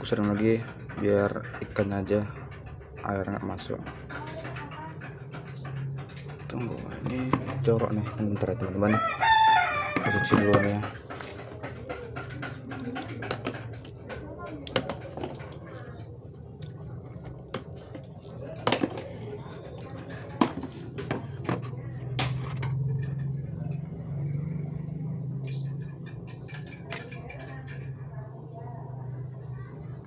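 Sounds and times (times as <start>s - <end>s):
utensils clinking on metal basin: 0.0s - 23.9s, 25.6s - 28.1s.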